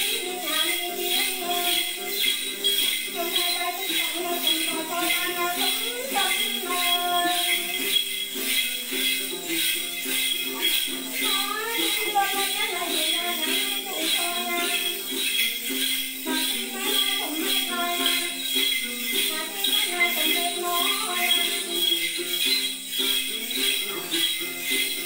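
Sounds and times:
person singing: 0.0s - 8.6s, 11.1s - 25.0s
jingle bells shaken: 0.0s - 25.0s
plucked lute: 0.0s - 25.0s.

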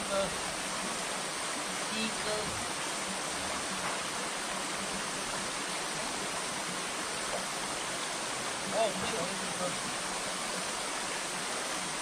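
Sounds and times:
stream water rushing: 0.0s - 12.0s.

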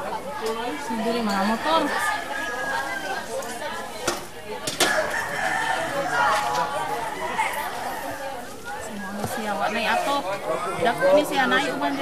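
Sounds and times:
people talking: 0.0s - 12.0s
rooster crowing: 1.6s - 3.2s, 4.8s - 8.2s.

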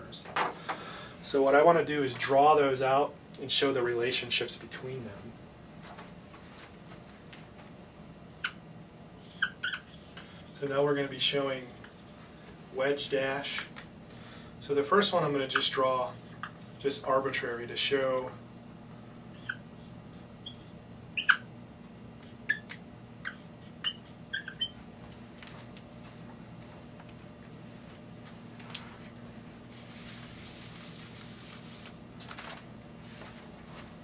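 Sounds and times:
steady low hum: 0.0s - 34.0s
marker squeaking on whiteboard: 8.4s - 8.6s, 9.2s - 10.4s, 19.3s - 21.5s, 22.2s - 24.8s.

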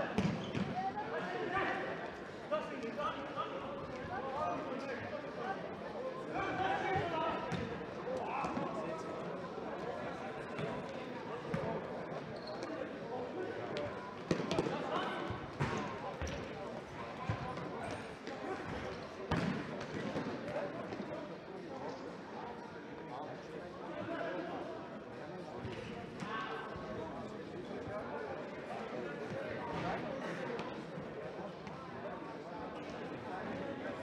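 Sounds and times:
people shouting and chattering: 0.0s - 34.0s
soccer ball kicked and bouncing: 0.2s - 0.8s, 15.5s - 16.5s.

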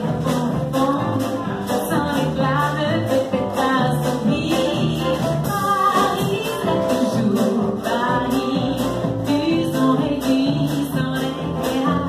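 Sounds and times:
upright double bass: 0.0s - 12.0s
woman singing into microphone: 0.0s - 12.0s.

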